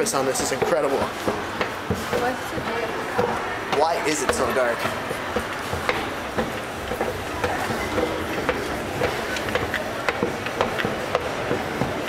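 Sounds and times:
footsteps on metal steps: 0.0 - 12.0
steady background noise: 0.0 - 12.0.

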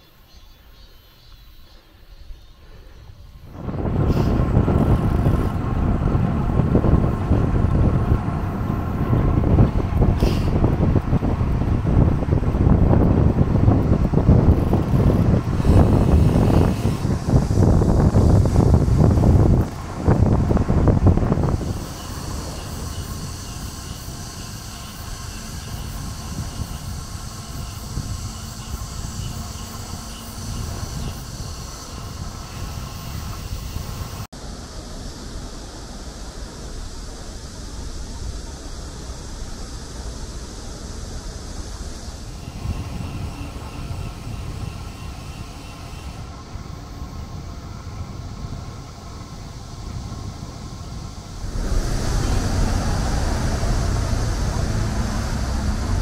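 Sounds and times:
wind buffeting microphone: 2.7 - 34.3, 35.0 - 56.0.

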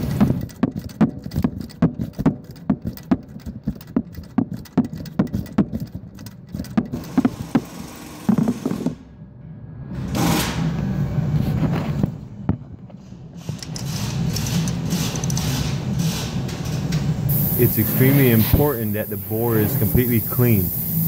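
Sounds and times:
ratchet wrench clicking: 0.0 - 8.1, 13.4 - 16.3, 17.3 - 21.0
scraping rustling noise: 11.3 - 12.2, 17.7 - 19.9.

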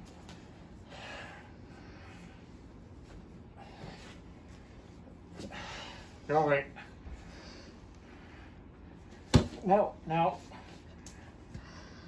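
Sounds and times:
people breathing with strain: 0.8 - 2.6, 3.5 - 4.3, 5.4 - 6.2, 7.1 - 8.8, 11.1 - 12.0.

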